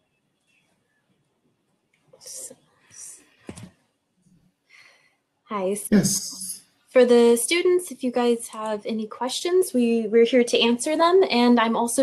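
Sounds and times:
person whispering: 5.9s - 6.6s.

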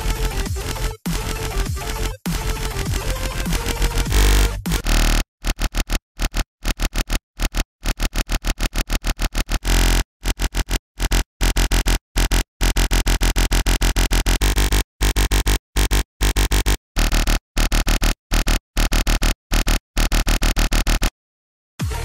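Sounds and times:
growly synthesized dubstep bass: 0.0s - 17.4s.

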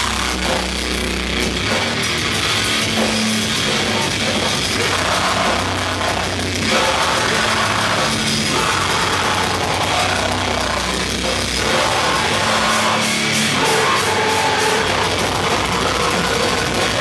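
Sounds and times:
vocals over band: 0.0s - 1.0s, 1.6s - 17.0s
heavy metal band playing: 0.0s - 17.0s.

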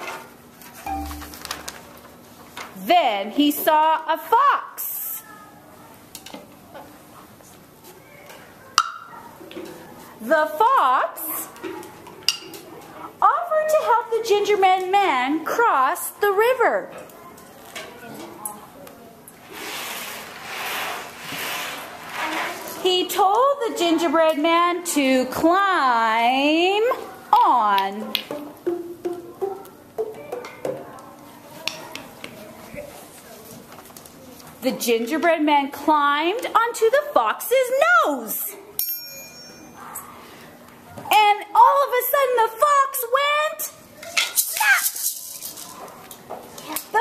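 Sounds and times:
percussion instrument struck ringing: 0.9s - 1.5s, 38.8s - 39.8s
percussion instruments struck: 0.9s - 1.7s, 28.2s - 30.5s
murmur of children: 5.1s - 20.4s, 21.7s - 25.5s, 26.7s - 35.2s, 39.7s - 47.0s.

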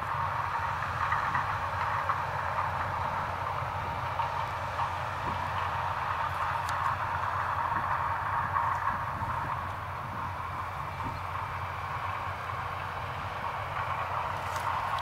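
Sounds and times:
combine harvester drone: 0.0s - 15.0s.

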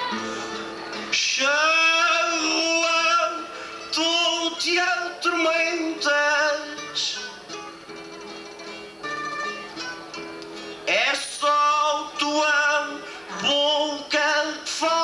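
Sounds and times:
man singing folk song: 0.0s - 7.6s, 10.6s - 15.0s
plucked guitar: 0.0s - 15.0s.

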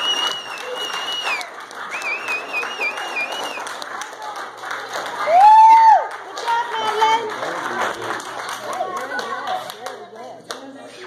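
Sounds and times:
audience clapping: 0.0s - 10.8s.

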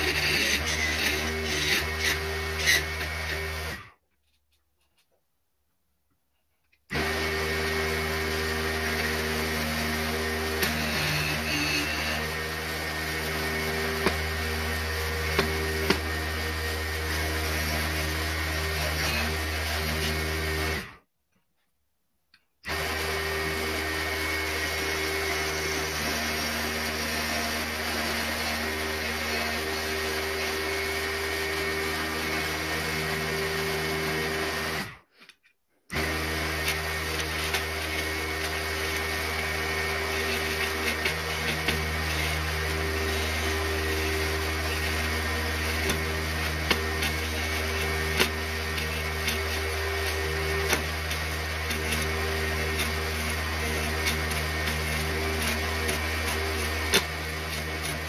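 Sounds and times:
wood lathe motor running: 0.0s - 3.9s, 6.9s - 21.0s, 22.7s - 35.0s, 35.9s - 58.0s
chisel cutting spinning wood: 0.0s - 4.0s, 6.9s - 21.0s, 22.7s - 35.0s, 35.9s - 58.0s.

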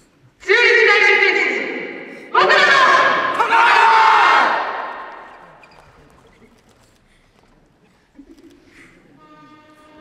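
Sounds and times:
group shouting in unison: 0.8s - 5.3s.

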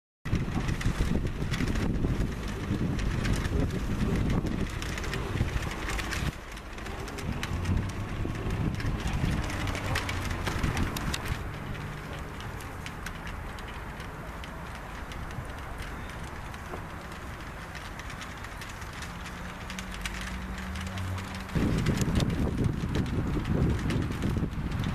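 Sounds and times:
low steady rumble: 0.3s - 24.9s
wind buffeting microphone: 0.3s - 24.9s.

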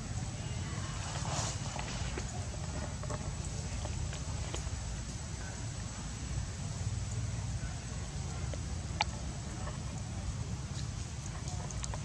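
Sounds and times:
short rustle: 0.7s - 5.2s.

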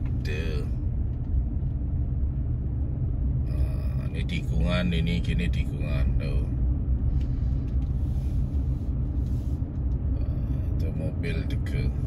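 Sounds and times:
car driving slowly rumble: 0.0s - 12.0s.

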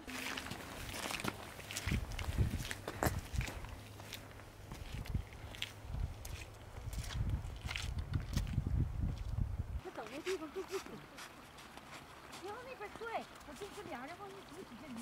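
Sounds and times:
footsteps crunching on wet gravel: 0.0s - 14.4s.

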